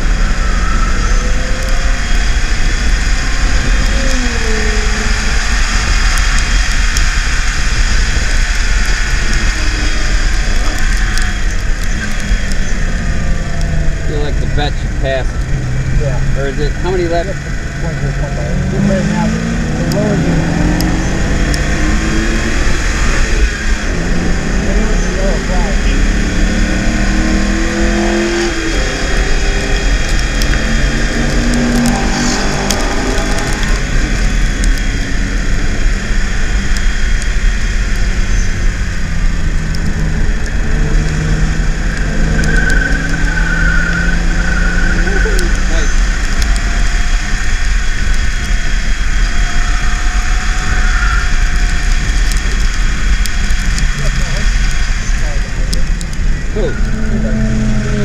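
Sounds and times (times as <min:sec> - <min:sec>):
car engine accelerating through gears: 0:00.0 - 0:58.0
low road rumble: 0:00.0 - 0:58.0.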